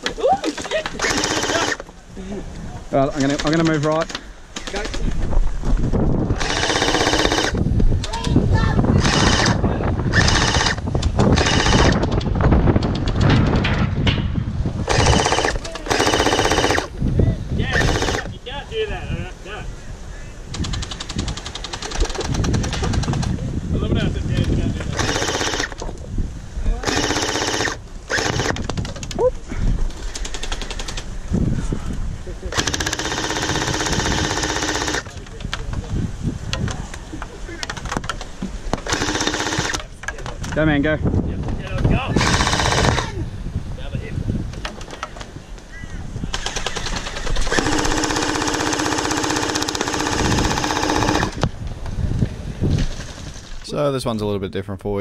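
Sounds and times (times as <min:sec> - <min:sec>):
gel blasters firing full auto: 0:01.0 - 0:01.8, 0:06.4 - 0:07.6, 0:09.0 - 0:12.1, 0:14.9 - 0:16.9, 0:17.7 - 0:18.3, 0:25.0 - 0:25.8, 0:26.8 - 0:28.7, 0:32.5 - 0:35.0, 0:38.8 - 0:39.8, 0:42.2 - 0:43.1, 0:46.3 - 0:51.4.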